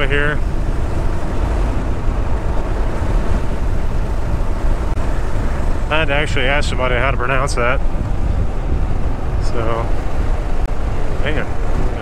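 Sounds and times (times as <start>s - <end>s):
motorcycle engine rumble: 0.0s - 12.0s
wind buffeting microphone: 0.0s - 12.0s.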